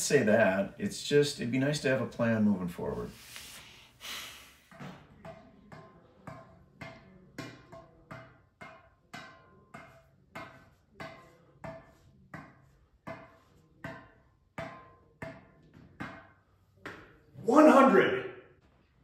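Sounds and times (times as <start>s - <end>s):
tennis ball bouncing on racket strings: 4.7s - 17.2s.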